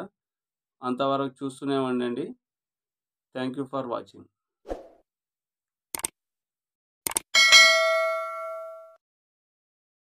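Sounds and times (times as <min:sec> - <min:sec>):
notification bell ding: 0:07.4 - 0:09.0.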